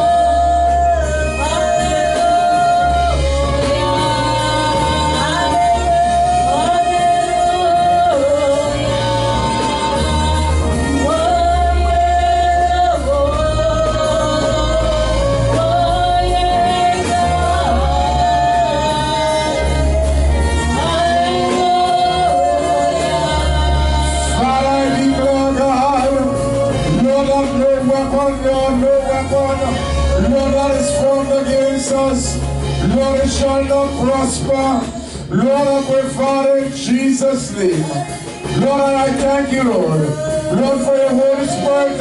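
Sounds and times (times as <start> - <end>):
woman singing: 0.0 - 34.8, 39.6 - 42.0
live band with keyboard: 0.0 - 42.0
steady bass: 0.0 - 42.0.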